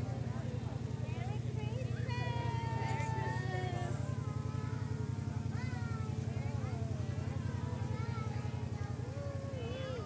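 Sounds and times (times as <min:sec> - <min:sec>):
small engine chugging: 0:00.0 - 0:10.0.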